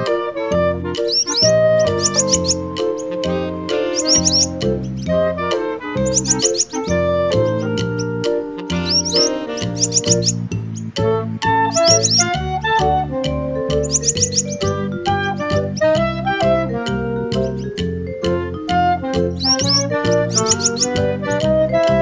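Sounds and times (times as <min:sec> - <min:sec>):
upbeat children's music: 0:00.0 - 0:22.0
high bird chirps: 0:01.0 - 0:12.9, 0:13.7 - 0:16.1, 0:17.3 - 0:17.8, 0:19.2 - 0:22.0.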